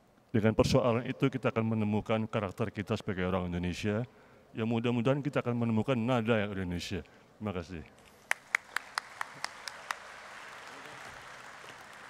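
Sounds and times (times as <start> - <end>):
crowd applause: 8.3 - 12.0
loud single claps: 8.3 - 12.0.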